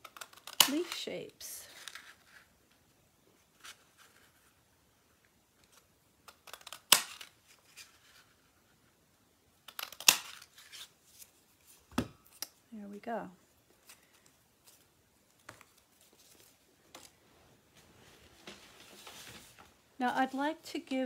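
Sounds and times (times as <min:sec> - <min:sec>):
paper handling: 0:18.0 - 0:19.7.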